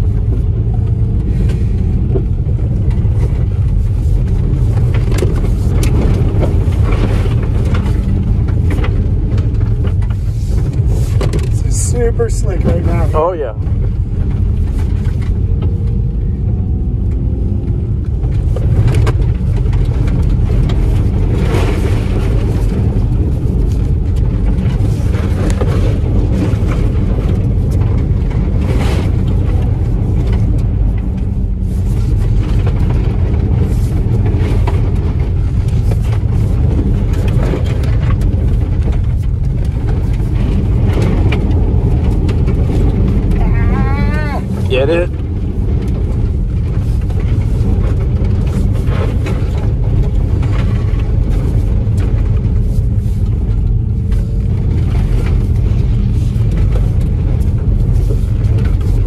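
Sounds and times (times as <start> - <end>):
gravel ticking against underbody: 0.0 - 59.0
tyres rumbling on wet gravel: 0.0 - 59.0.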